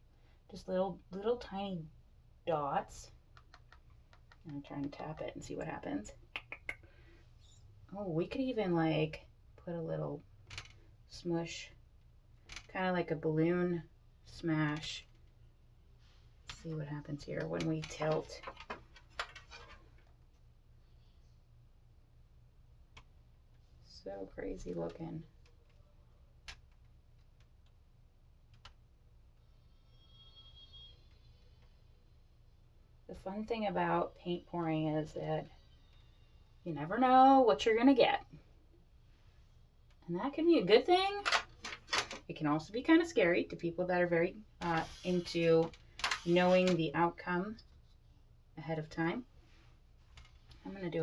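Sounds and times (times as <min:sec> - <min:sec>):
faint high tone: 0:29.6 - 0:31.6.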